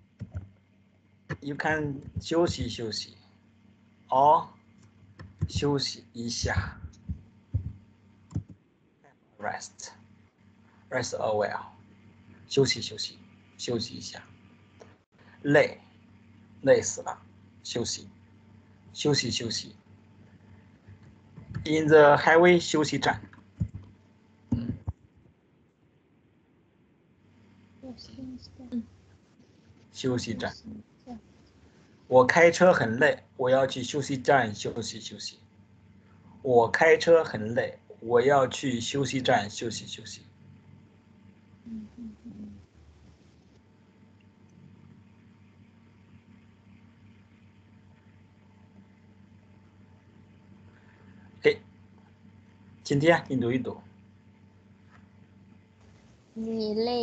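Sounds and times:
faint steady hum: 0.0 - 57.0
person talking: 1.3 - 3.1, 4.1 - 4.5, 5.2 - 8.5, 9.4 - 9.9, 10.9 - 11.7, 12.5 - 14.2, 15.5 - 15.8, 16.6 - 18.0, 19.0 - 19.7, 21.0 - 23.8, 24.5 - 24.9, 27.9 - 28.8, 30.0 - 31.2, 32.1 - 35.3, 56.4 - 57.0.

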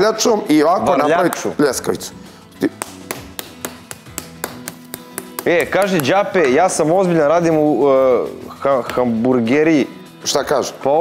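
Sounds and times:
quiet background music: 0.0 - 11.0
wooden spoon tapping meat on board: 2.8 - 6.2.

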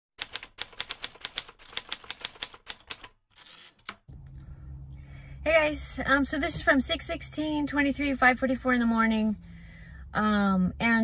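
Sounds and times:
sharp mechanical clicks: 0.2 - 4.0.

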